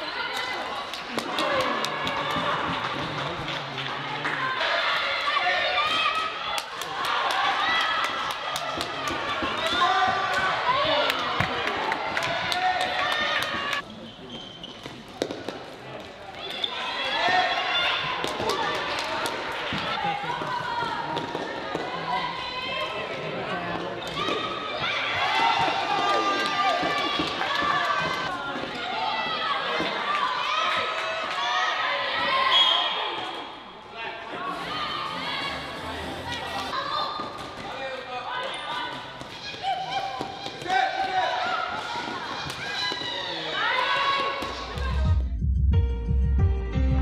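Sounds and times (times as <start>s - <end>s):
shoes squeaking on sports floor: 13.8s - 15.4s.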